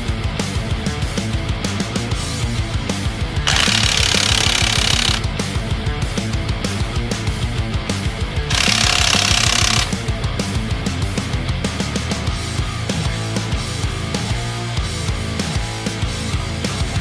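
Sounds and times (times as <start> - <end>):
loud rock music: 0.0 - 3.5, 5.2 - 8.5, 9.8 - 17.0
impact wrench hammering lug nuts: 3.5 - 5.2, 8.5 - 9.9.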